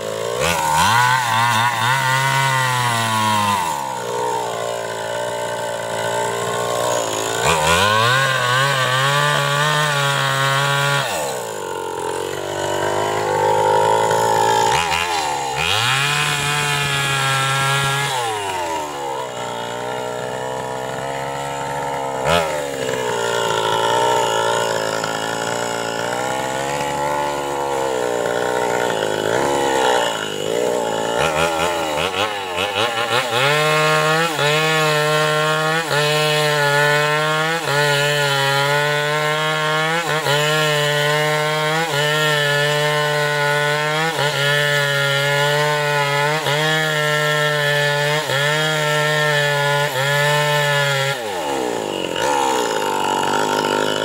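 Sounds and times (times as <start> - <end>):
chainsaw cutting wood: 0.0 - 54.0.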